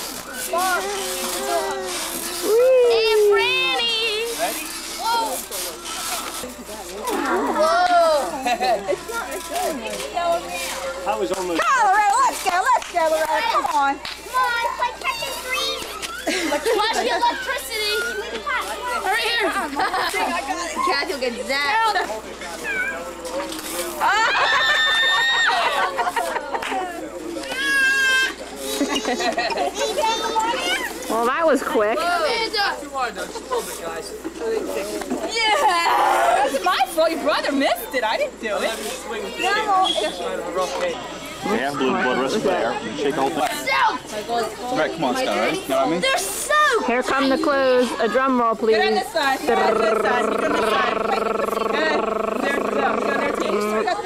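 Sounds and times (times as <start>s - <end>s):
children and adults chattering: 0.0s - 54.0s
high-pitched calls: 49.5s - 53.9s.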